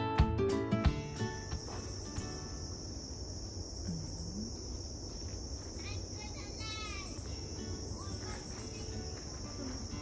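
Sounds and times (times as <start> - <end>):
insects chorus: 0.8 - 10.0.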